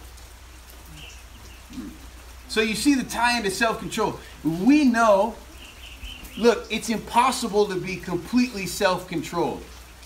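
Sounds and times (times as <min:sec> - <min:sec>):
faint hiss: 0:00.0 - 0:10.0
soft vocal sound: 0:00.8 - 0:02.3.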